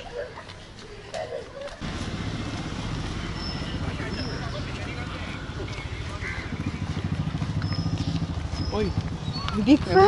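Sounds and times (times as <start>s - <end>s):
motor vehicle low rumble: 1.8s - 10.0s.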